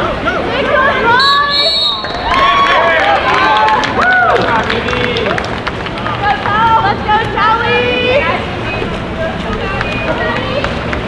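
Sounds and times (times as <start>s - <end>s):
voices shouting and calling out: 0.0s - 4.6s.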